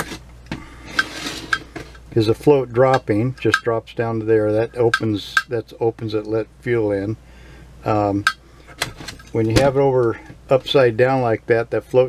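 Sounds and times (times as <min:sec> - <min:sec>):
scraping rustle: 0:00.9 - 0:02.0.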